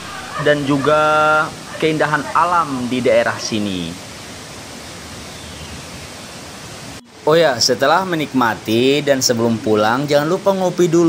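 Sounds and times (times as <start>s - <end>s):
waterfall rushing: 0.0s - 11.0s.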